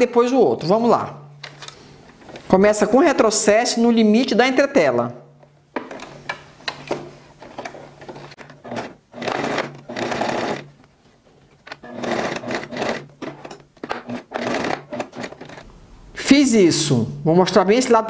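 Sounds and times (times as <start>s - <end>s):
electric sewing machine stitching: 7.7s - 10.8s, 11.7s - 15.6s.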